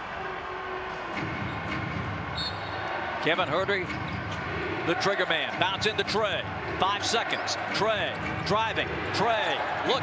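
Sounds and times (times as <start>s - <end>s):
arena crowd din: 0.0s - 10.0s.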